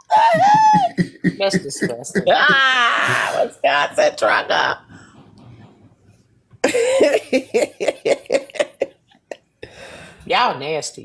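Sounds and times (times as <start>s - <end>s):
person laughing heartily: 0.0s - 3.5s, 6.6s - 9.4s.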